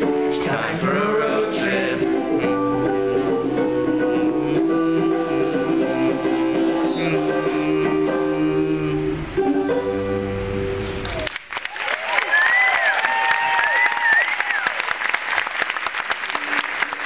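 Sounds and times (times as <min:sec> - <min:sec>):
ukulele strumming: 0:00.0 - 0:11.1.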